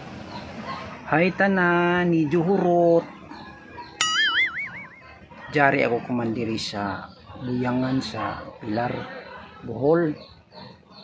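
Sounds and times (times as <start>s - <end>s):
wobbling sound effect note: 4.0s - 5.0s.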